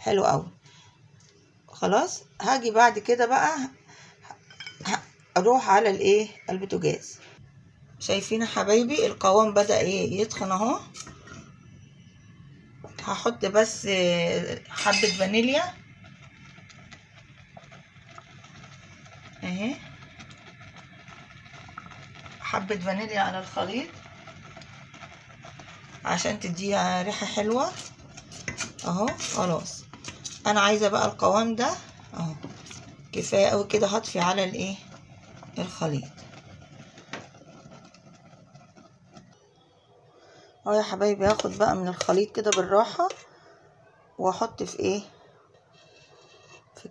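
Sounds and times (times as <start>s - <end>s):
spoon knocking in enamel pot: 4.4s - 4.9s
gas stove burner: 12.9s - 39.4s.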